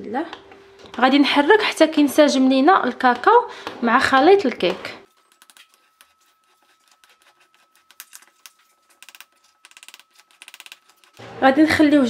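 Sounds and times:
spoon scraping ceramic bowl: 0:05.0 - 0:11.2.

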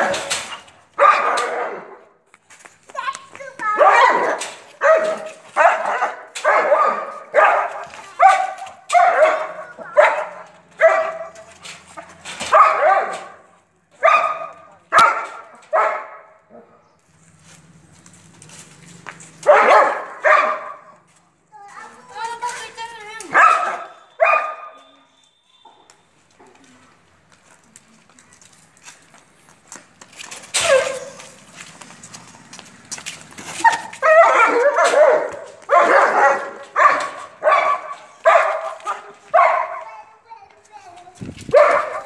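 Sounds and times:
dog barking: 0:01.0 - 0:02.1, 0:03.8 - 0:11.5, 0:12.5 - 0:16.8, 0:19.4 - 0:21.0, 0:23.3 - 0:24.8, 0:30.6 - 0:31.2, 0:33.6 - 0:40.0, 0:41.5 - 0:42.0.

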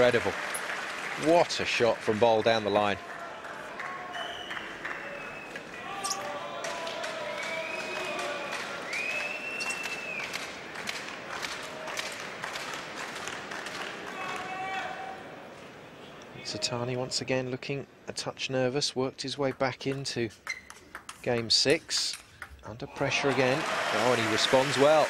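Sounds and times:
crowd shouting and cheering: 0:00.0 - 0:10.4, 0:14.0 - 0:15.4, 0:22.7 - 0:25.0
crowd clapping: 0:00.0 - 0:14.8, 0:23.0 - 0:25.0
high whistles: 0:04.1 - 0:06.3, 0:07.3 - 0:08.2, 0:08.8 - 0:10.3.

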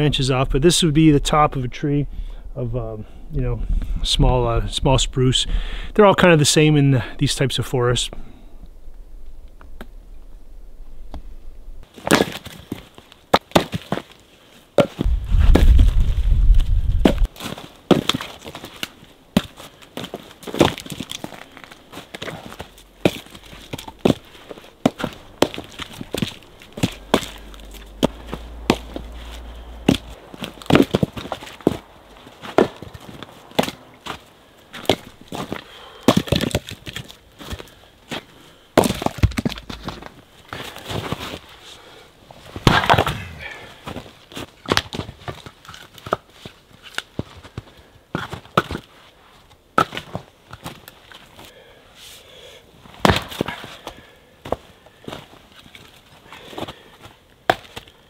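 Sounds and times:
low rumble: 0:00.0 - 0:06.0, 0:08.1 - 0:11.8, 0:15.0 - 0:17.3, 0:26.3 - 0:30.7
logs knocking onto woodpile: 0:32.4 - 0:37.6, 0:38.8 - 0:40.6, 0:42.6 - 0:44.0.

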